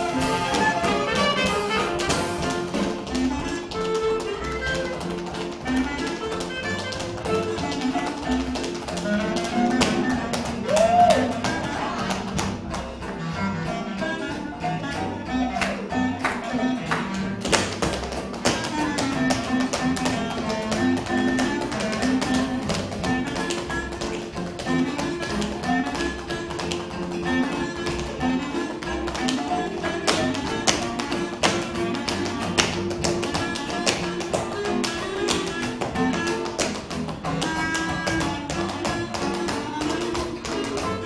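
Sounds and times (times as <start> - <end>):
tap shoes on stage floor: 0.0 - 41.0.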